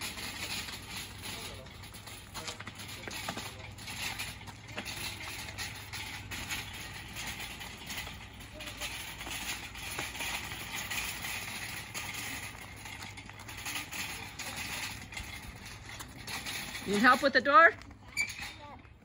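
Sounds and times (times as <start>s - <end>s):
cart frame clicking and rattling: 0.0s - 19.0s.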